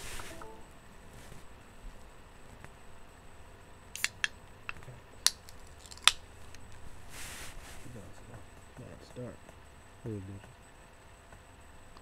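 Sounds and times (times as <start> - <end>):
short hiss: 0.0 - 0.6.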